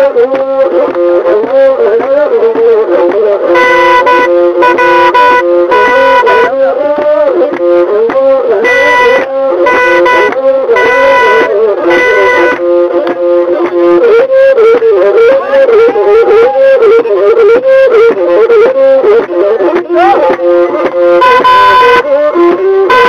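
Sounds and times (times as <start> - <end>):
short repeated chords: 3.4 - 6.7, 7.5 - 14.8, 20.2 - 23.0.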